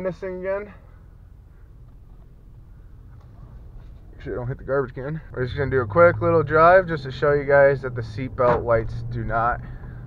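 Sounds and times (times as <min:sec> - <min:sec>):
pickup truck engine rumbling: 0:00.0 - 0:10.0.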